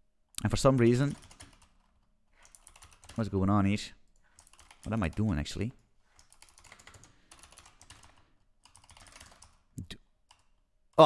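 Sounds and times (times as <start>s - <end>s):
computer keyboard typing: 0.6s - 3.4s, 4.1s - 10.6s.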